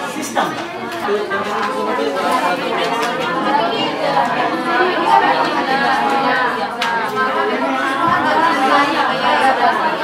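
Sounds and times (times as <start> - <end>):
students chattering: 0.0 - 10.0.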